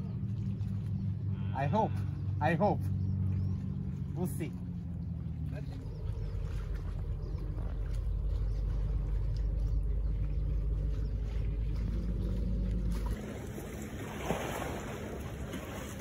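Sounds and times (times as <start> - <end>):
motorboat engine drone: 0.0 - 16.0.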